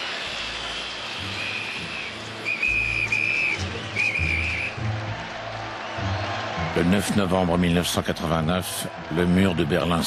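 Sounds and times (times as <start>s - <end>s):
whistle blasts: 1.2s - 4.9s.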